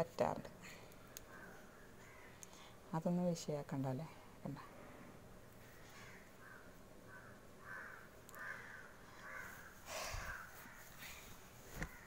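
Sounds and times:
crow cawing: 1.4s - 2.4s, 5.7s - 10.9s.

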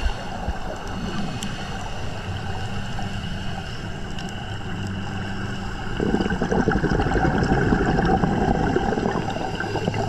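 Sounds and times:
low engine hum underwater: 0.0s - 10.0s.

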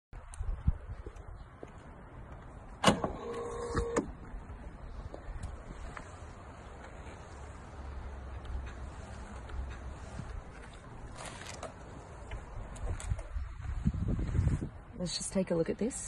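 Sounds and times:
brief motor whir: 2.9s - 4.1s.

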